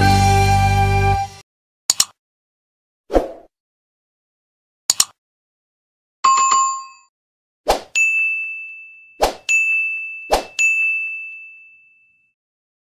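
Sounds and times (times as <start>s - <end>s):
bright bell ding: 8.0s - 12.3s.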